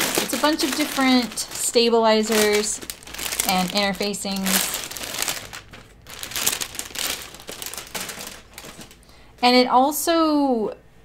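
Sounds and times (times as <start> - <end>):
plastic bag crinkling: 0.0 - 9.4.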